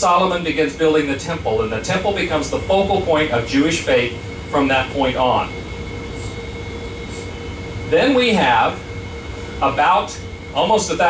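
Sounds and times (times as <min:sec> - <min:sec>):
machinery low rumble: 0:00.0 - 0:11.0
ventilation hum: 0:00.0 - 0:11.0.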